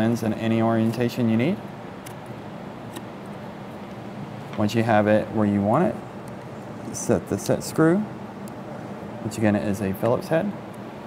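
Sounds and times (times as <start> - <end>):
steady room hiss: 0.0 - 11.0.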